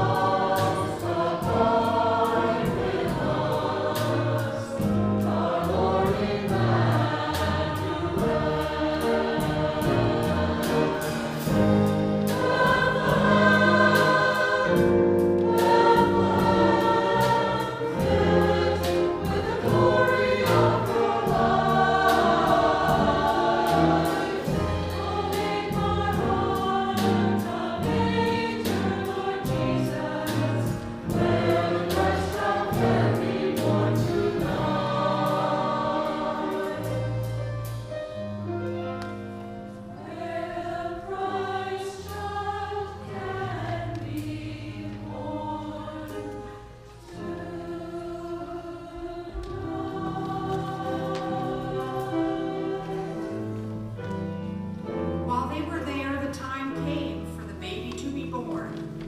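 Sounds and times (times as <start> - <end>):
steady rhythmic beat: 0.0 - 37.9
choir singing in parts: 0.0 - 55.2
instrumental accompaniment: 0.0 - 59.0.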